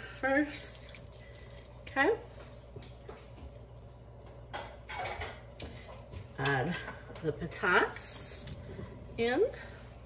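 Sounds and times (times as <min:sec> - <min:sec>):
steady low hum: 0:00.0 - 0:10.0
cookware clattering: 0:04.5 - 0:05.5.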